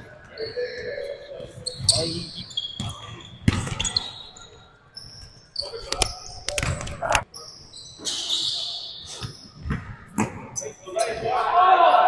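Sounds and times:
sneakers squeaking on court: 0.1 - 11.2.

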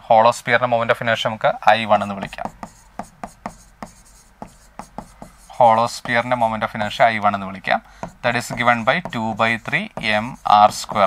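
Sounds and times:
stylus tapping on touchscreen: 2.1 - 6.4, 7.8 - 11.0.

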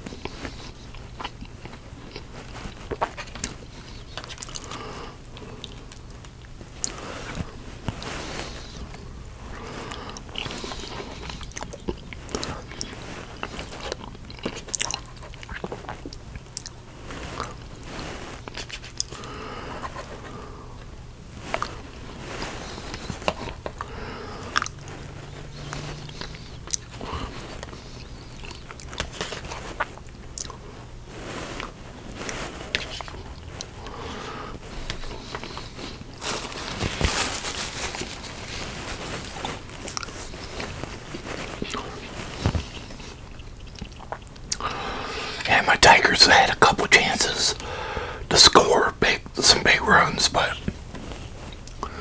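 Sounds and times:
soft rustles: 0.0 - 4.7, 5.8 - 19.1, 19.8 - 44.4, 50.4 - 51.8
man chewing food: 0.0 - 45.4, 50.0 - 52.0.

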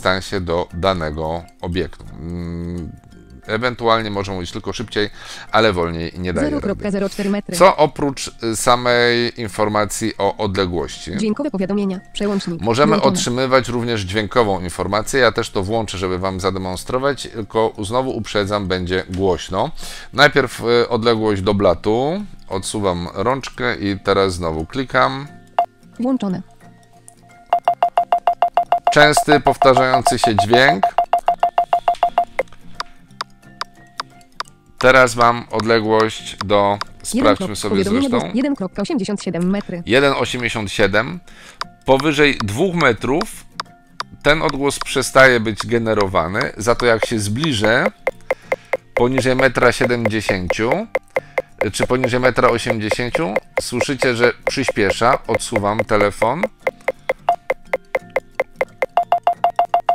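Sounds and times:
phone alert beeps: 27.5 - 32.4, 47.6 - 59.9.

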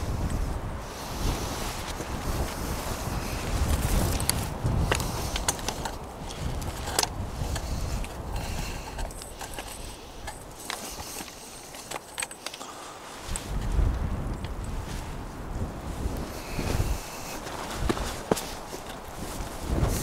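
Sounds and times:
wind gusting on microphone: 0.0 - 20.0
footsteps on rocky ground: 1.0 - 12.6, 13.2 - 20.0.

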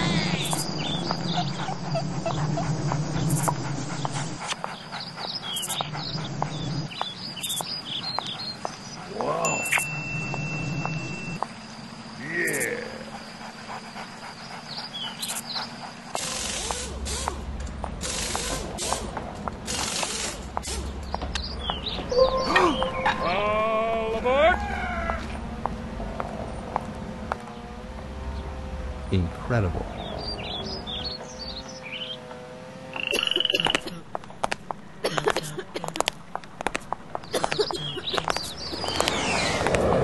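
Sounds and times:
bird chirps: 0.1 - 11.4, 13.8 - 16.6, 20.8 - 23.4, 29.9 - 32.3, 32.9 - 33.8, 37.2 - 39.6
bird trill: 21.1 - 23.4, 32.9 - 33.9.

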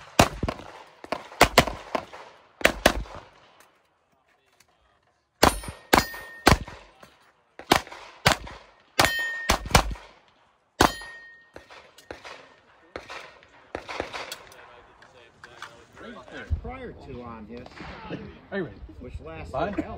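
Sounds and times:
pistol shots: 0.0 - 3.6, 5.4 - 7.0, 7.6 - 14.6
metallic clang of steel targets: 5.4 - 6.8, 9.0 - 10.0, 10.8 - 12.6.

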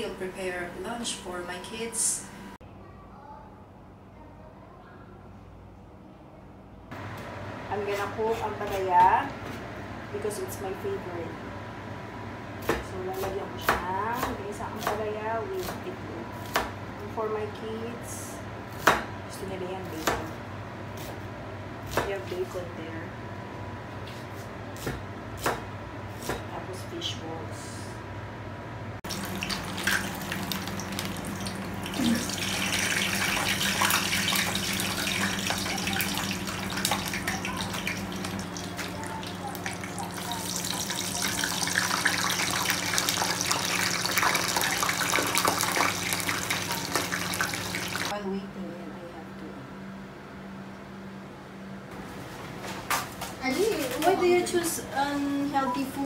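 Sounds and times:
steady low hum: 0.0 - 2.8
tap water running into sink: 29.1 - 48.1.

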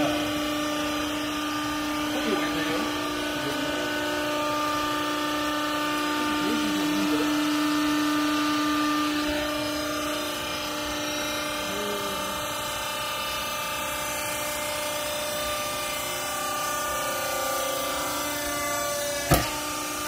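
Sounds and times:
hydraulic motor and pump humming: 0.0 - 20.0.

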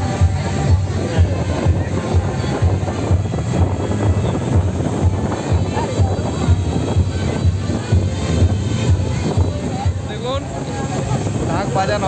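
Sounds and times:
loud music with low drum beat: 0.0 - 10.1
crowd voices hubbub: 0.0 - 12.0.

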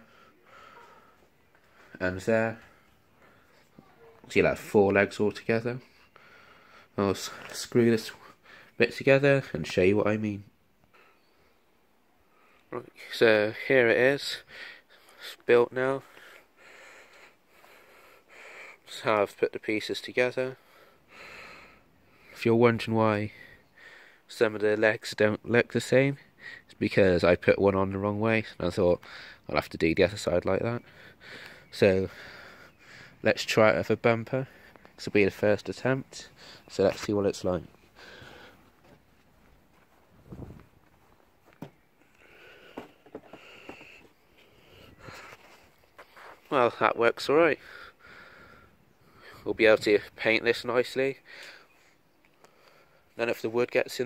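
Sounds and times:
faint breathing: 0.0 - 2.0, 2.6 - 3.9, 5.8 - 8.8, 10.8 - 12.8, 14.4 - 15.4, 16.0 - 18.9, 20.6 - 22.4, 23.3 - 24.3, 29.0 - 29.5, 30.8 - 33.3, 34.4 - 35.0, 36.2 - 36.8, 37.7 - 39.2, 41.9 - 46.5, 47.6 - 49.5, 51.2 - 53.2
speech: 2.0 - 2.6, 3.7 - 5.9, 7.0 - 8.2, 8.8 - 10.5, 12.7 - 14.4, 15.2 - 16.1, 18.9 - 20.6, 22.4 - 23.4, 24.3 - 30.8, 31.7 - 32.1, 33.2 - 37.7, 46.5 - 47.6, 49.4 - 51.2, 53.2 - 54.0.

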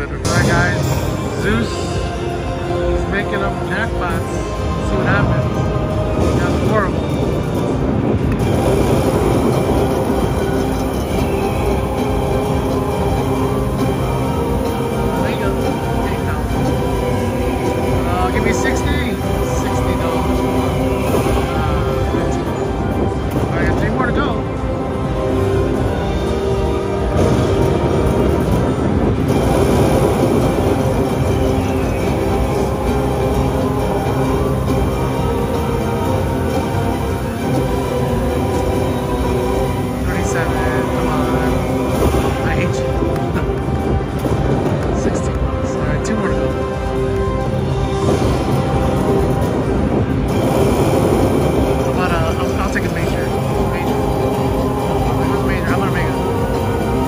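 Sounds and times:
dramatic slot machine music: 0.0 - 57.0.

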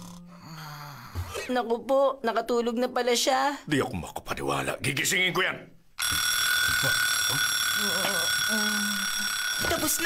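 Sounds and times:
alarm clock timer ringing: 6.0 - 10.0.

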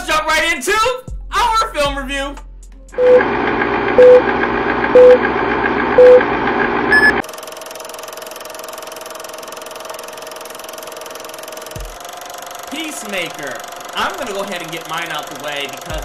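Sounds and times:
short electronic beeps: 4.0 - 4.2, 5.0 - 5.2, 6.0 - 6.2, 6.9 - 7.2.

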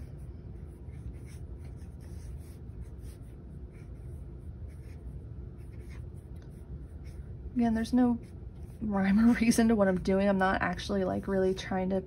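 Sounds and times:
marker scratching on paper: 0.0 - 7.2
low steady background hum: 0.0 - 12.0.

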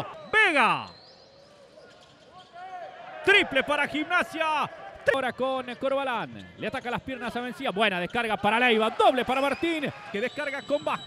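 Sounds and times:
faint basketball court noise: 0.0 - 11.0.

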